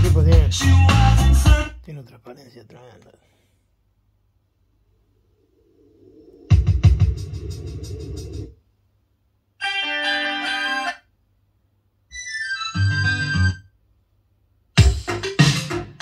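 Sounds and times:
recorded music through speakers: 0:00.0 - 0:01.9, 0:05.4 - 0:08.6, 0:09.6 - 0:11.1, 0:12.1 - 0:13.6, 0:14.8 - 0:16.0.

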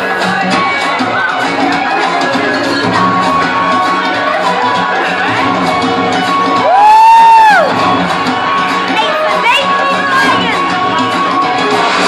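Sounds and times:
recorded music playing: 0:00.0 - 0:12.0
audience member whooping: 0:06.6 - 0:07.8.

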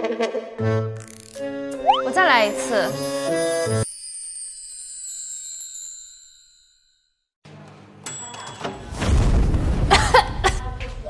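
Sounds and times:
sparkling chime: 0:02.0 - 0:07.2.

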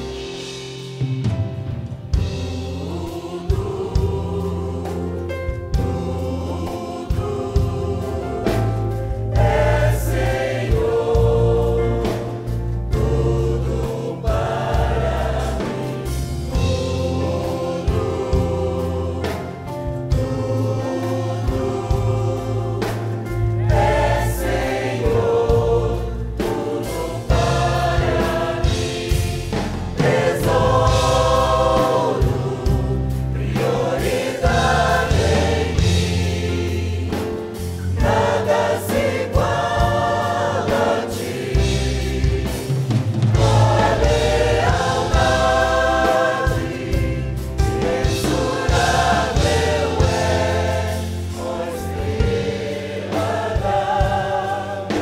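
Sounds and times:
choir singing: 0:00.0 - 0:00.6, 0:02.1 - 0:55.0.

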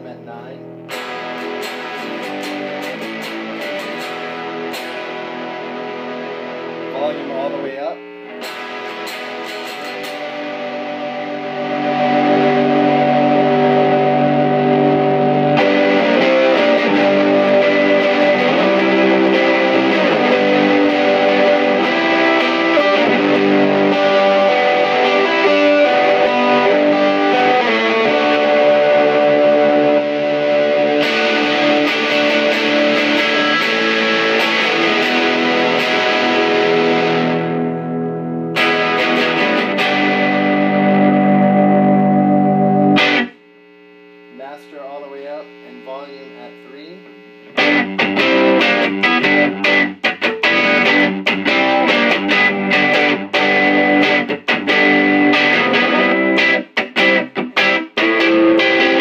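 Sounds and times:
overdriven electric guitar: 0:00.0 - 0:44.4, 0:45.1 - 0:59.0.

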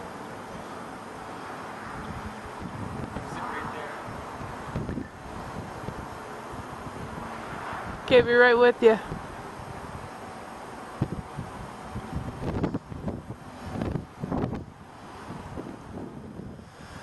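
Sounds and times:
wind buffeting microphone: 0:01.8 - 0:17.0.

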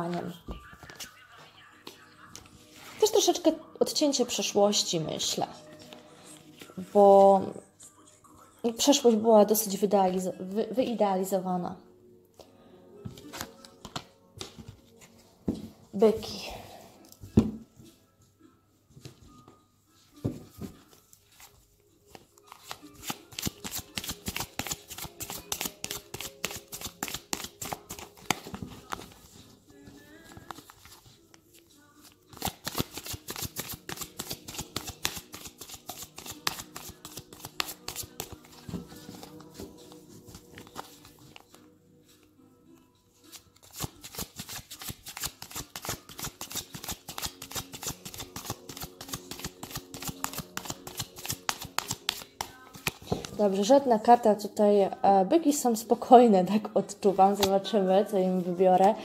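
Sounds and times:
cards being shuffled: 0:00.7 - 0:01.1, 0:13.2 - 0:15.2, 0:21.4 - 0:41.7, 0:43.2 - 0:53.5, 0:57.3 - 0:57.7.

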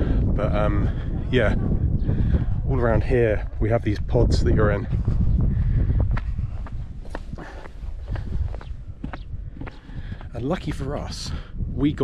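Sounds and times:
footsteps on paved path: 0:00.0 - 0:11.5
wind rumble on microphone: 0:00.0 - 0:12.0.

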